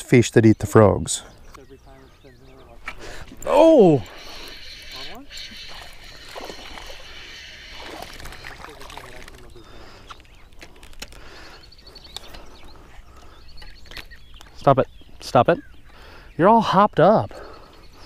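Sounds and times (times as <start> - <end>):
fish splashing at water surface: 4.0 - 9.5.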